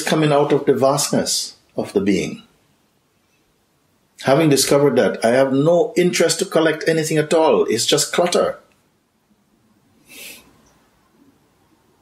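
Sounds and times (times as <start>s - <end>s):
breath through the nose: 10.0s - 10.6s.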